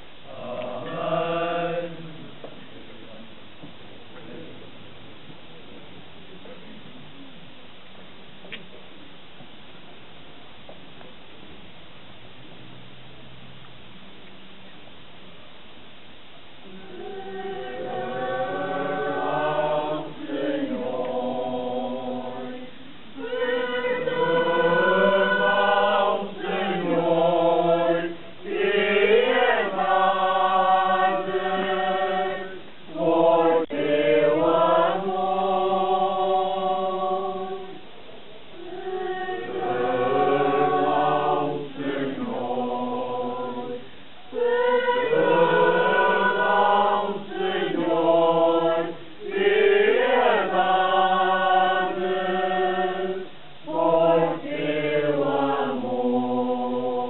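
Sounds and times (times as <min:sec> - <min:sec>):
choir singing slow chant: 0:00.0 - 0:02.8, 0:16.6 - 0:57.0.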